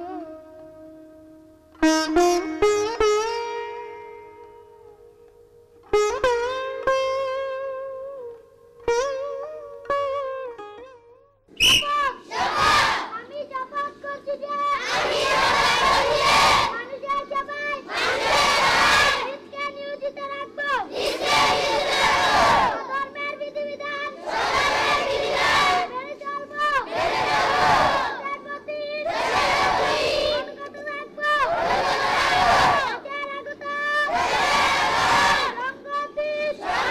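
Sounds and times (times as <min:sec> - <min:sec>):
children chanting in unison: 0:12.2 - 0:13.2, 0:14.7 - 0:19.4, 0:20.8 - 0:30.7, 0:31.3 - 0:33.1, 0:34.0 - 0:35.6, 0:36.2 - 0:36.9.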